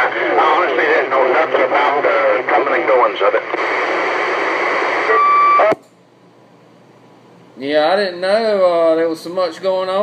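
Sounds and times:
radio static hiss: 0.0s - 5.8s
radio click: 2.5s - 6.0s.

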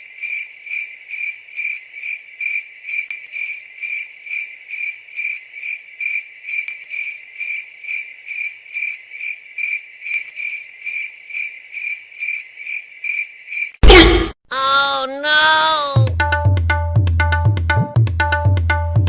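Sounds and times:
cricket chirping: 0.1s - 13.8s.

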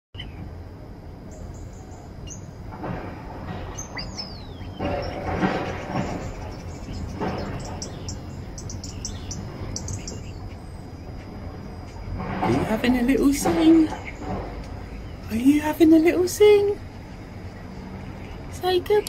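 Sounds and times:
steady low rumble: 0.2s - 19.0s
starling singing: 3.8s - 10.9s.

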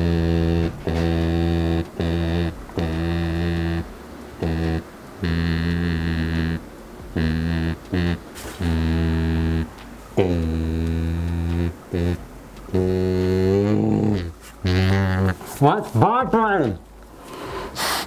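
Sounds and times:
humming through snorkel mask: 0.0s - 15.6s.

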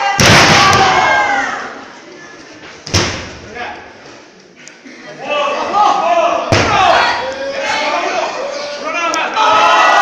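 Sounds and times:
spectators shouting: 5.2s - 10.0s.

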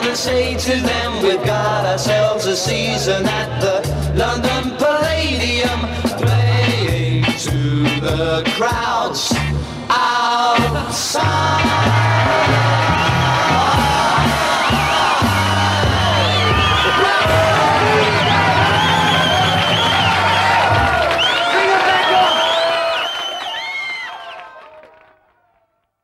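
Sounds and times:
beat band playing: 0.0s - 9.9s, 10.6s - 22.2s
voices whooping and cheering: 11.6s - 25.6s.

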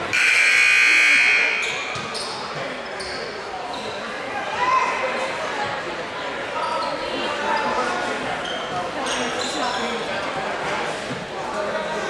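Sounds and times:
crowd chatter: 0.0s - 12.0s
sneaker squeaks: 1.5s - 4.0s, 8.4s - 10.0s.

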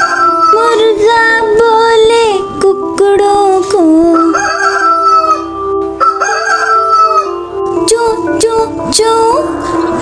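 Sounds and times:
rooster crowing: 0.0s - 0.6s, 4.2s - 7.4s.

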